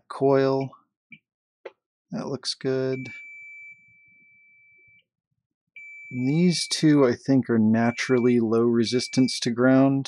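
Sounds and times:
multimeter high beep: 2.9s - 3.8s, 5.8s - 6.7s, 7.8s - 9.5s.

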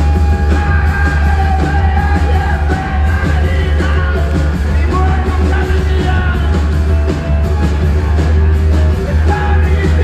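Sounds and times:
live rock band: 0.0s - 10.0s.

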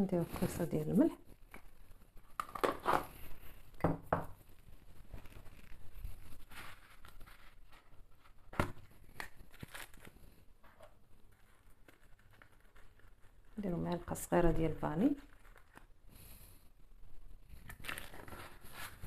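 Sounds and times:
faint rustling: 4.4s - 19.0s.

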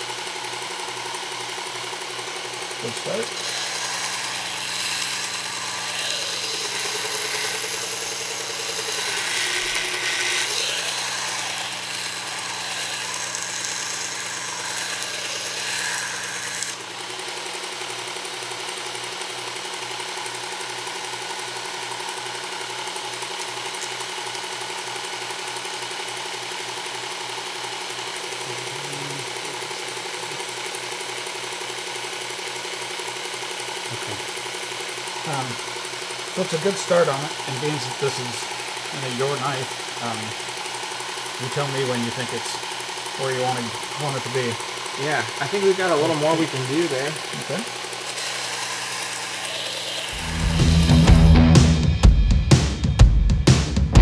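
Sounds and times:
steel grinding on sander belt: 0.0s - 51.9s
motor humming: 0.0s - 54.0s.

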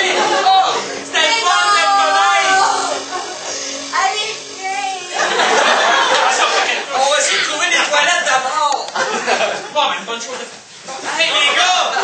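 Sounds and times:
high voice singing: 0.0s - 5.2s.

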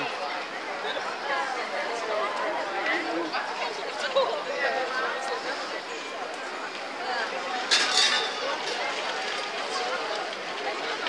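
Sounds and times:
outdoor background noise: 0.0s - 11.0s
people chattering: 0.0s - 11.0s.

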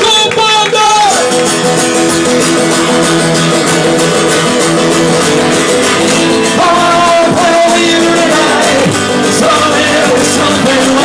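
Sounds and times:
acoustic guitars strumming chords: 0.0s - 11.0s
person singing: 6.2s - 11.0s.

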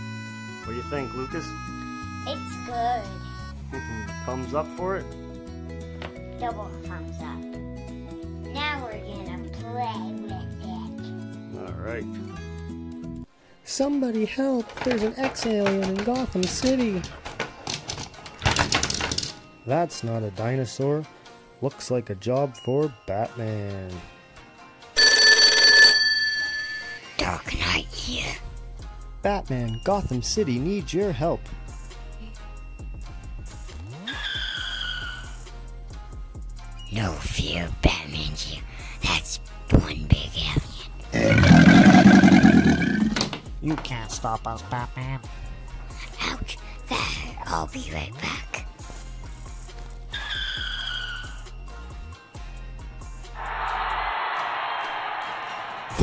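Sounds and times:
electric bell ringing: 25.0s - 27.0s.

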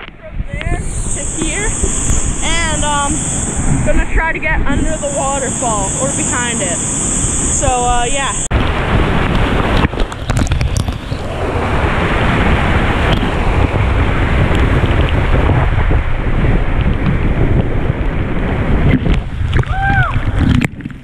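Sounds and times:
waterfall rushing and splashing: 0.6s - 15.4s.

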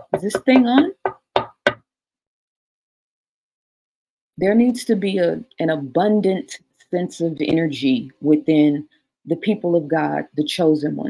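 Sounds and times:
knocking taps on a microphone: 0.0s - 1.8s.

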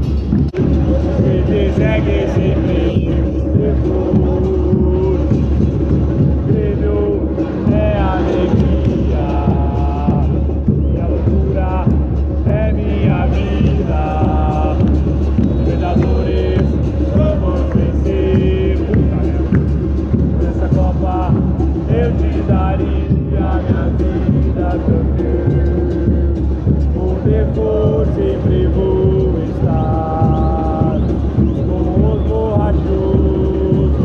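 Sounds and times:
stadium crowd chanting: 0.0s - 34.0s.

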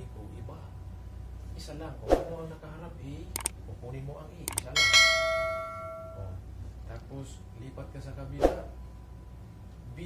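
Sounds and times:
bright metallic ding: 4.7s - 6.4s.

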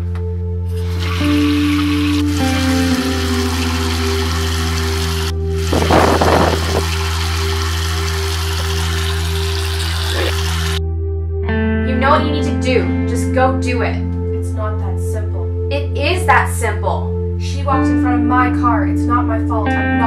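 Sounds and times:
tap water running into sink: 0.7s - 10.8s.

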